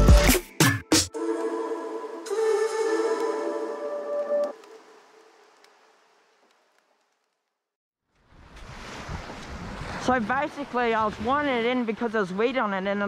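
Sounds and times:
background music: 0:00.0 - 0:04.6
wind: 0:04.2 - 0:13.0.

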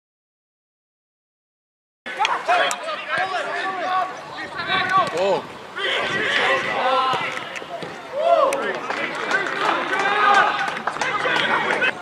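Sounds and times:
voices shouting and calling out: 0:02.1 - 0:12.0.

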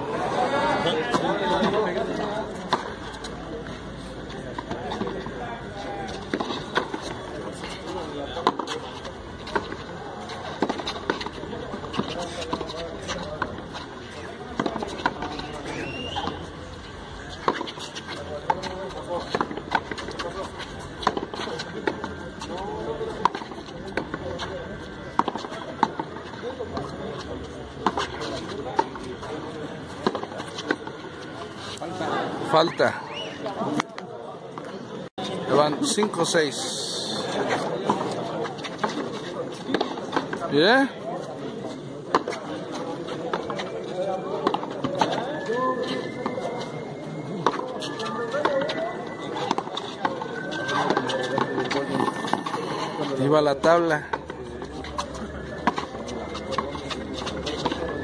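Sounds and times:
indistinct voices murmuring: 0:00.0 - 0:58.0.

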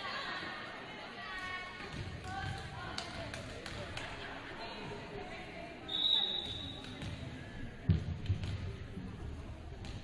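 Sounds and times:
spectators' voices in hall: 0:00.0 - 0:10.0.

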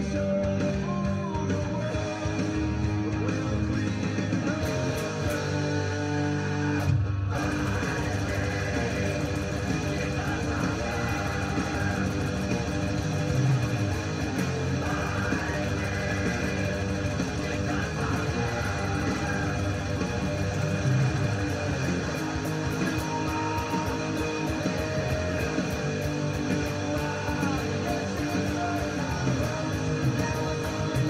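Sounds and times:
distorted electric guitar riff: 0:00.0 - 0:31.0.

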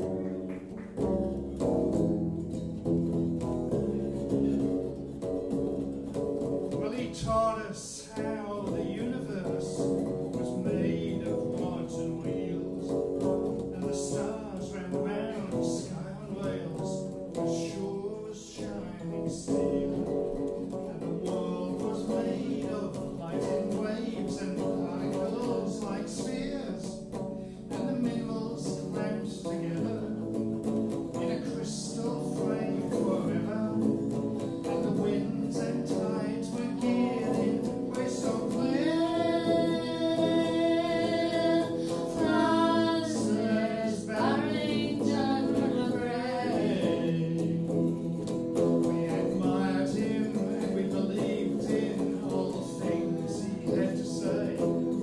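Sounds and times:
electric guitar picking: 0:00.0 - 0:55.0
person singing: 0:06.7 - 0:55.0.

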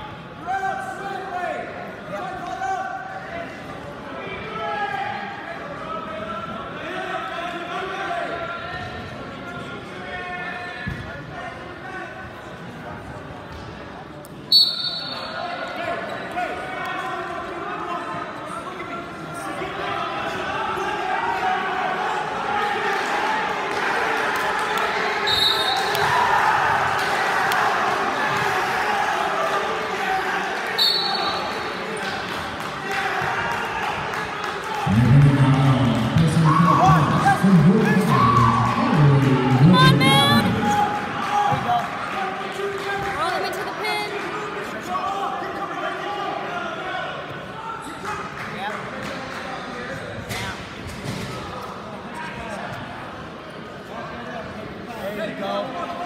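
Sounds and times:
crowd chatter echoing: 0:00.0 - 0:56.0
referee's whistle blasts: 0:14.5 - 0:15.4, 0:25.3 - 0:26.0, 0:30.8 - 0:31.6.

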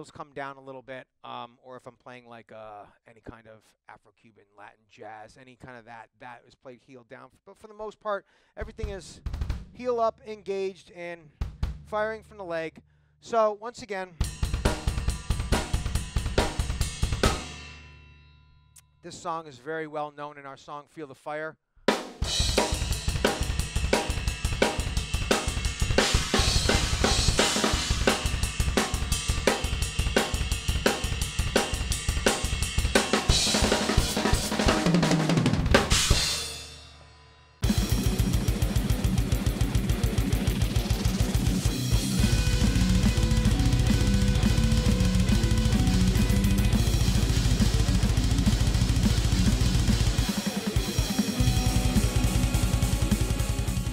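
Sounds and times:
double bass drum pattern: 0:11.3 - 0:12.1, 0:14.2 - 0:17.6, 0:22.0 - 0:36.6, 0:37.6 - 0:53.9
heavy metal music with guitar: 0:14.2 - 0:17.7, 0:22.2 - 0:36.8, 0:37.6 - 0:53.9
snare and cymbals: 0:14.2 - 0:17.7, 0:21.9 - 0:53.9.

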